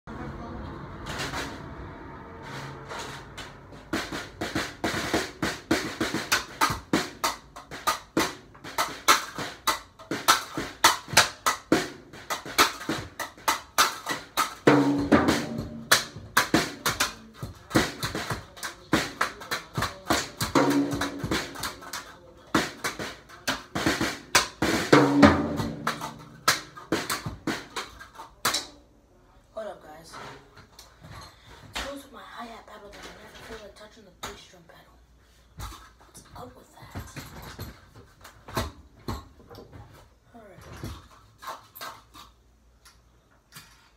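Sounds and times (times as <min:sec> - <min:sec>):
drum kit played fast: 0:02.7 - 0:28.0.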